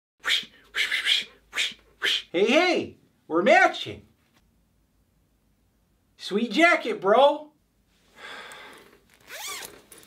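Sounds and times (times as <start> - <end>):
man making breathy huffs: 8.1 - 9.0.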